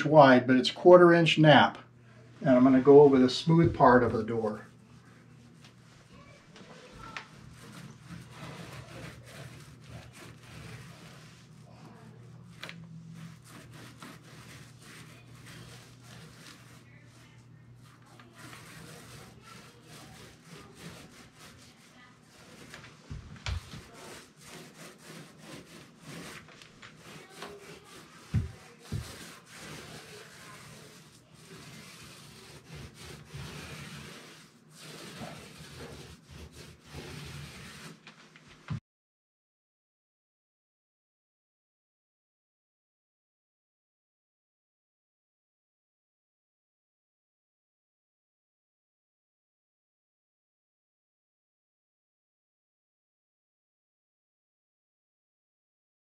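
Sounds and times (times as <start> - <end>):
paint roller rubbing on door: 2.4 - 38.8.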